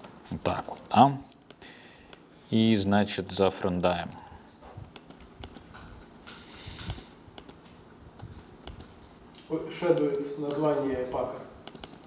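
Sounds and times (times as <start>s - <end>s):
computer keyboard typing: 3.5s - 6.0s, 6.8s - 9.1s, 9.7s - 12.0s.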